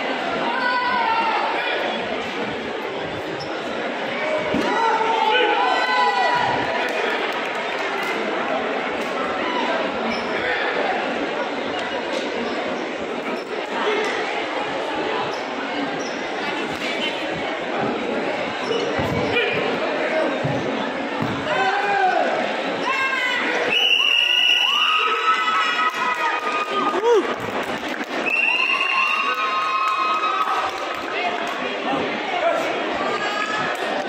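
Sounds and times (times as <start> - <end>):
hubbub of voices in echoing hall: 0.0 - 34.0.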